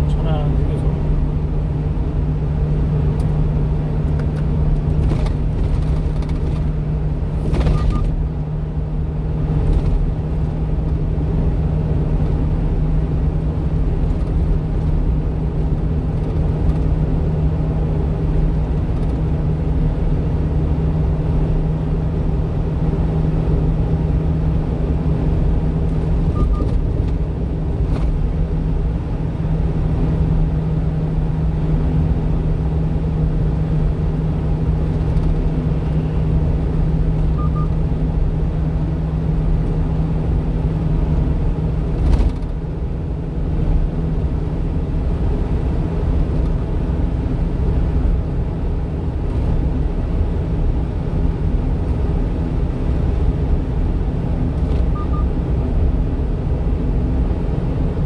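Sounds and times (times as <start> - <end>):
road rumble: 0.0 - 58.0
truck engine drone: 0.0 - 58.0.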